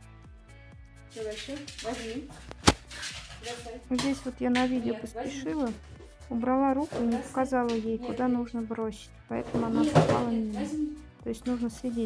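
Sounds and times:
sharp knock: 2.6s - 2.9s.

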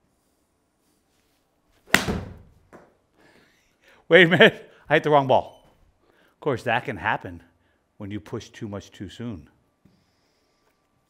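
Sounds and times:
golf club striking ball: 1.9s - 2.6s.

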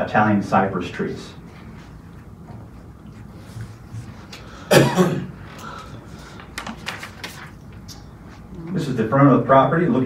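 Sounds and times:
low room hum: 0.0s - 10.0s
man coughing: 4.7s - 5.4s.

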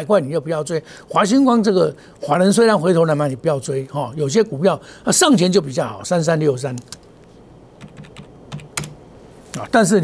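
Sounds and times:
keyboard key clicks: 7.8s - 9.0s.

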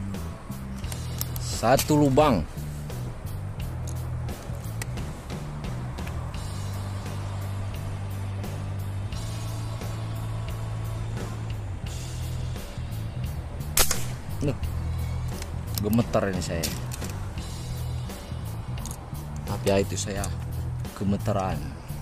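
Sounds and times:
music with steady bass line: 0.0s - 22.0s
air rifle shot: 13.8s - 14.4s.

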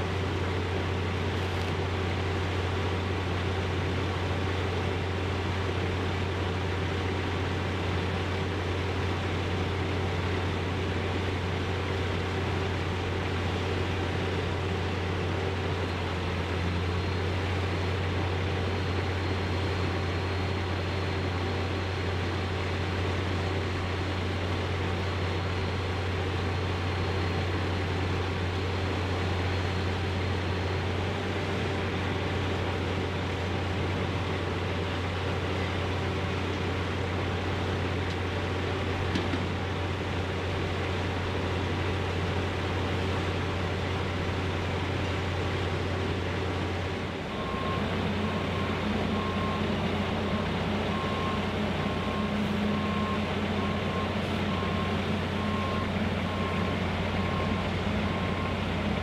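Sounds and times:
diesel engine drone: 0.0s - 59.0s
backup alarm beeping: 47.3s - 58.7s.

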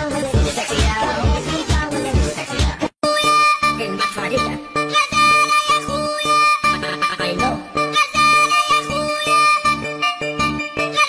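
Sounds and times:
rhythmic instrumental music: 0.0s - 11.0s.

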